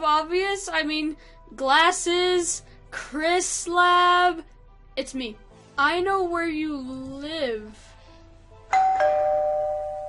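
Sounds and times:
two-tone doorbell chime: 8.7 - 10.0.

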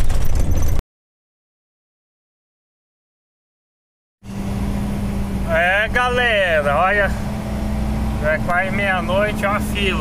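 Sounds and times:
truck engine running: 4.3 - 10.0.

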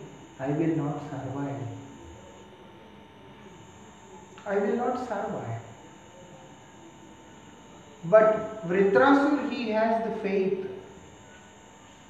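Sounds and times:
thin steady hum: 0.0 - 12.0.

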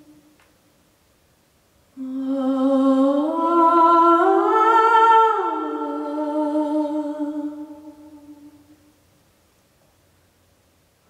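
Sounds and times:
woman singing long held notes: 1.9 - 8.9.

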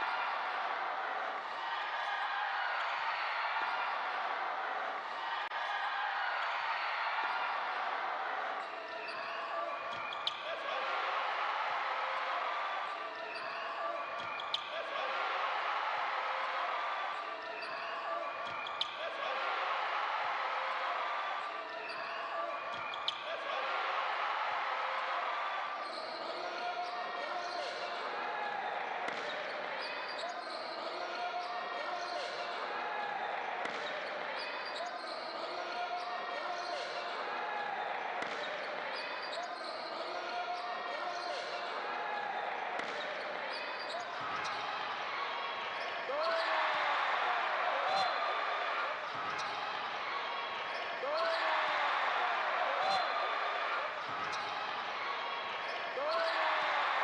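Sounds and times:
voices in an arena: 0.0 - 57.0.

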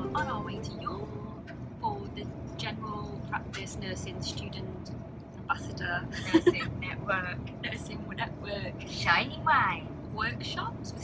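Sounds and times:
woman's voice: 0.0 - 4.9, 5.5 - 11.0
train rumble inside carriage: 0.0 - 11.0.

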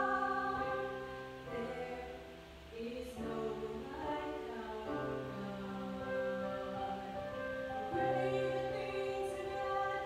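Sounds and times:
piano: 0.0 - 10.0
woman singing slow song: 0.0 - 10.0.

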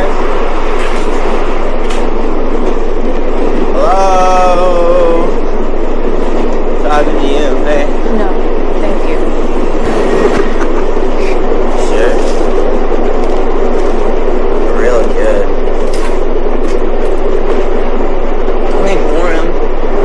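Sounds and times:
subway train running: 0.0 - 20.0
indistinct voices: 3.5 - 14.0, 14.6 - 17.2.

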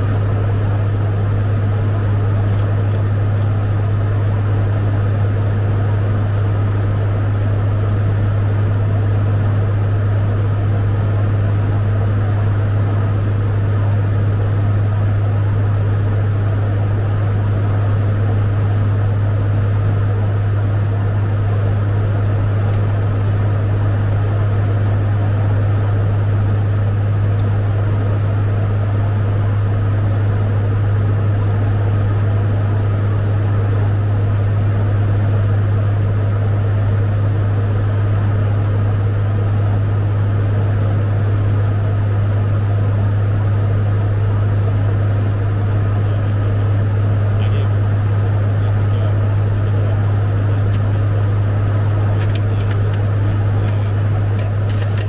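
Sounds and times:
engine and airflow rush: 0.0 - 55.0
propeller drone: 0.0 - 55.0.

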